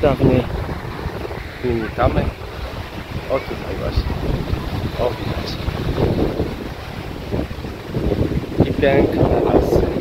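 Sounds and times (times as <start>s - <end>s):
water rushing down stream cascade: 0.0s - 10.0s
wind buffeting microphone: 0.0s - 10.0s.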